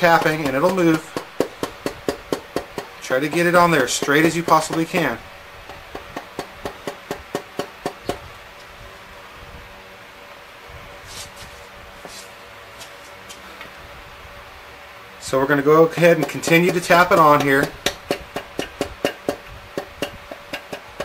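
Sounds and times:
low steady hum: 0.0s - 21.0s
mallet tapping on metal: 0.2s - 8.2s, 16.0s - 21.0s.

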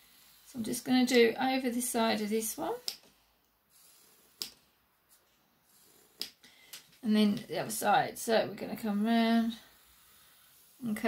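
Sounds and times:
pencil scratching on paper: 0.0s - 1.3s, 3.7s - 6.3s, 9.0s - 11.0s.

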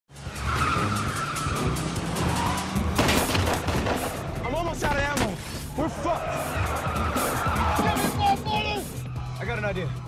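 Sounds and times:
tires squealing and skidding: 0.1s - 9.6s
film score music: 0.1s - 10.0s.

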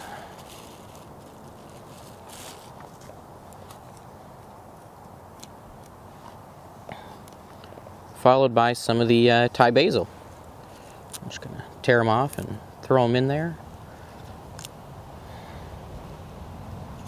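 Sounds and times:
plastic bag rustling: 0.0s - 4.0s
steady hiss: 0.0s - 17.0s.

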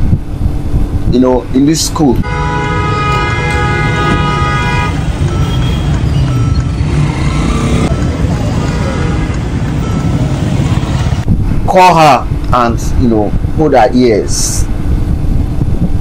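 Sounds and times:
engine and road rumble: 0.0s - 16.0s
car horn: 2.2s - 8.0s.

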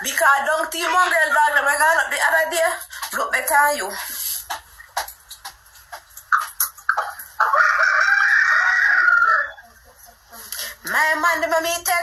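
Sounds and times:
rooster crowing: 7.4s - 9.7s.

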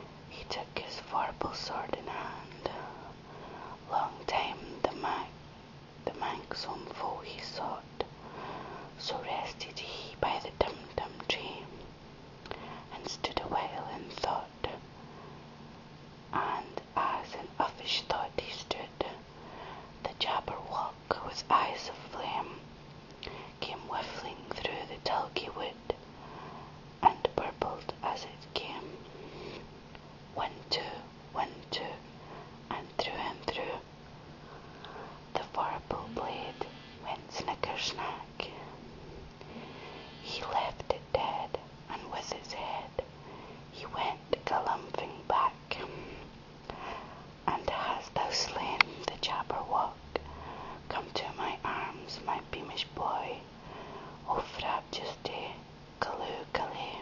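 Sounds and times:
person whispering a poem: 0.0s - 5.4s, 6.0s - 8.2s, 8.9s - 11.8s, 12.5s - 14.8s, 16.3s - 26.0s, 27.0s - 29.7s, 30.3s - 33.9s, 34.8s - 57.0s
faint low hum: 0.0s - 57.0s.

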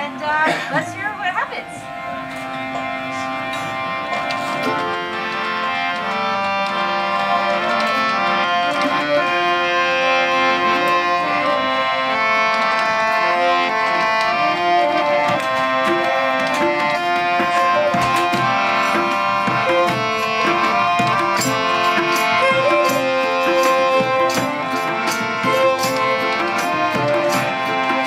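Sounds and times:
harmonium chords: 0.0s - 28.0s
plucked string instrument: 0.0s - 28.0s
tabla strokes: 2.0s - 28.0s.

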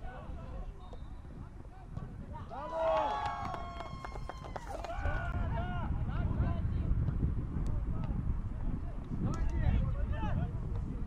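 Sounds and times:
wind rumble on microphone: 0.0s - 11.0s.

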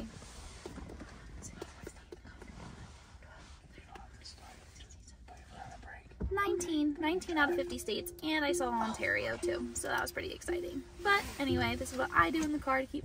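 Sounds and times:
low rumble inside a car: 0.0s - 13.0s
person whispering and muttering: 0.9s - 9.6s.

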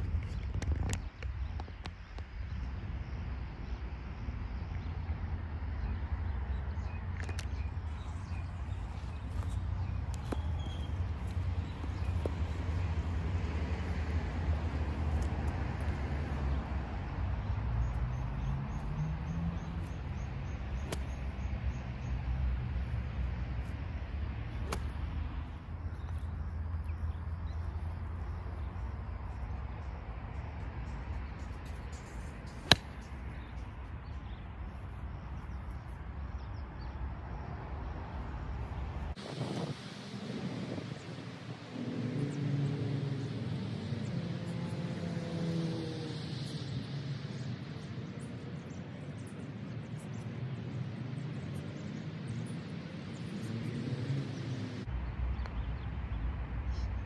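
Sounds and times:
golf club striking ball: 20.8s - 21.2s, 24.6s - 25.0s, 32.5s - 33.2s.

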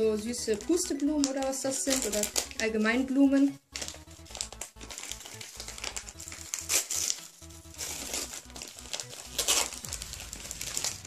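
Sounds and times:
wrapping paper crinkling: 0.0s - 2.7s, 3.6s - 11.0s.

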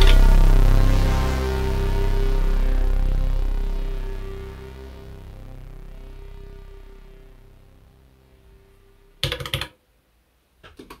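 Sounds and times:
synth note: 0.0s - 9.2s.

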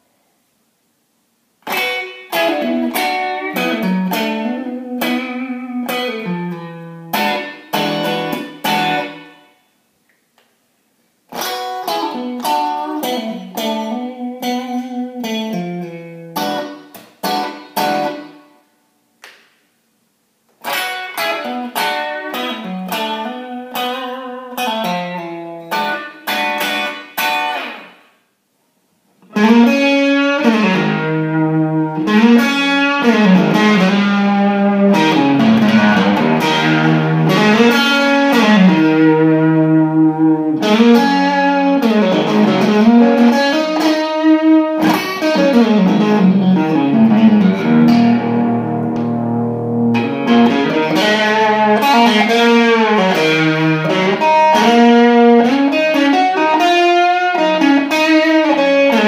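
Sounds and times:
electric guitar lead with bends: 1.6s - 9.5s, 11.3s - 18.4s, 20.6s - 28.0s, 29.2s - 59.0s.

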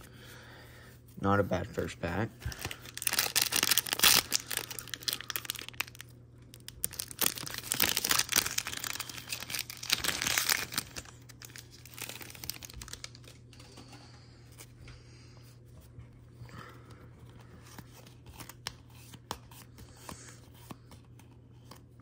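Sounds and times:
plastic wrapper crinkling and tearing: 2.4s - 13.7s.

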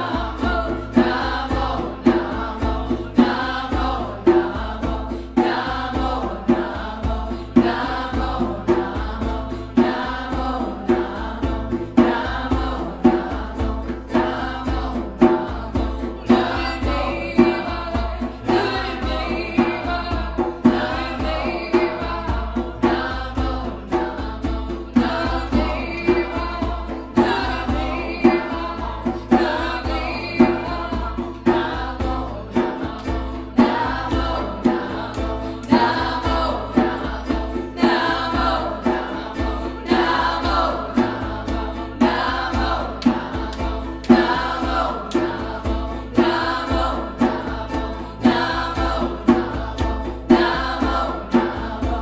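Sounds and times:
group chanting a mantra: 0.0s - 52.0s
musical accompaniment: 0.0s - 52.0s.

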